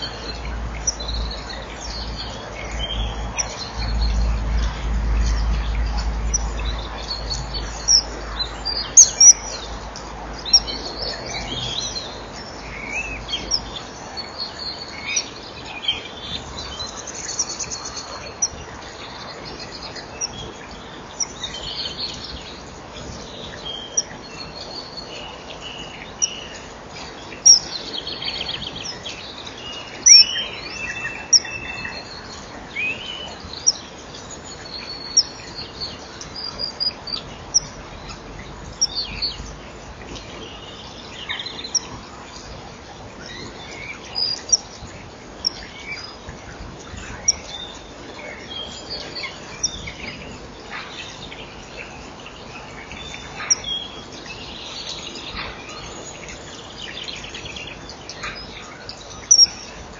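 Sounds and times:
small birds chirping: 0:00.0 - 0:59.9.

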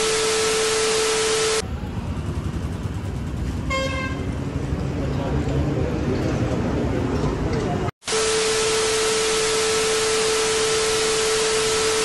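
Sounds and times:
roadside background noise: 0:01.6 - 0:08.0
vehicle horn toot: 0:03.7 - 0:04.3.

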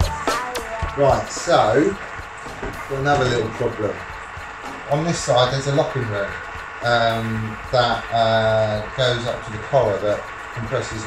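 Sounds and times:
background music: 0:00.0 - 0:11.0
man talking: 0:01.0 - 0:02.0, 0:02.9 - 0:04.1, 0:04.9 - 0:11.0.

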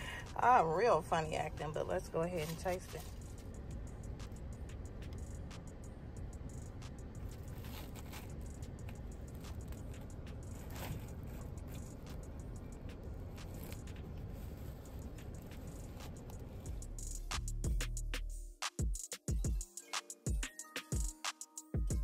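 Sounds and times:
steady low rumble: 0:00.0 - 0:18.0
sandwich wrapper crinkling: 0:07.2 - 0:11.4.

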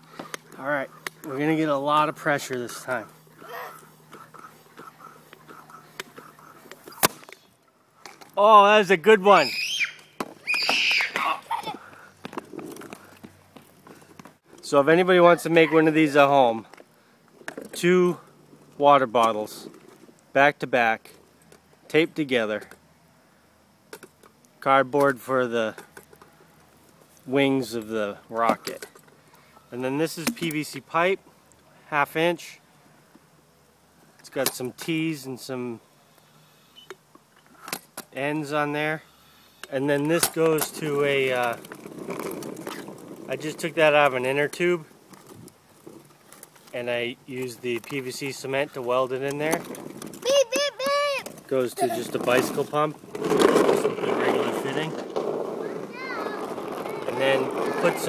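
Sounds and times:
child's excited shout: 0:03.4 - 0:03.8, 0:09.3 - 0:11.9, 0:50.2 - 0:52.1, 0:55.6 - 0:58.0.

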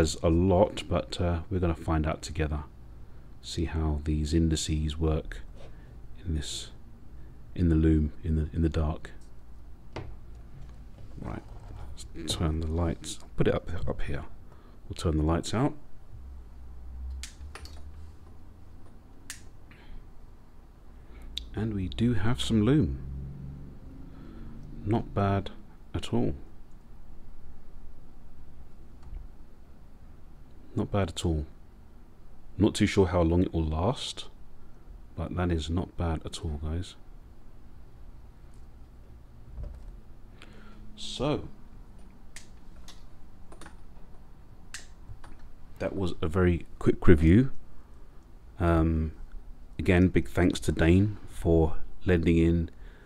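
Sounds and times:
low steady hum: 0:00.0 - 0:53.0.

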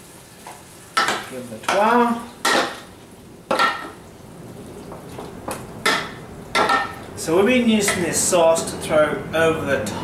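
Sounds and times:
spoon knocking against pan: 0:01.0 - 0:02.9, 0:03.5 - 0:04.0, 0:05.5 - 0:07.0.

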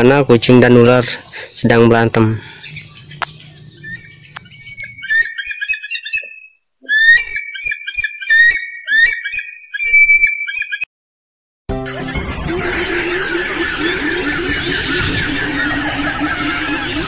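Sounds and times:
eagle chattering call: 0:02.4 - 0:10.8, 0:11.9 - 0:17.0
music: 0:11.7 - 0:12.6.

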